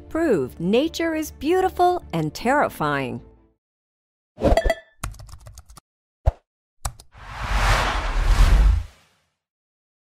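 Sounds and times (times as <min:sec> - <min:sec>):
whoosh: 0:07.2 - 0:09.2.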